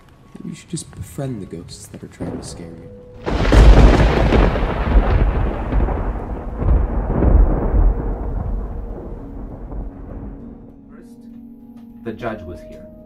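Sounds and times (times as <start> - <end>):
thunder rumble: 2.3 - 10.7.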